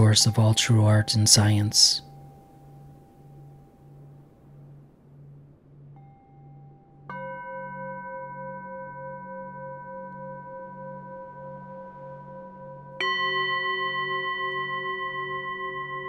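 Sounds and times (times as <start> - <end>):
low pulsing hum: 0.0 - 16.0
singing bowl ringing: 0.0 - 16.0.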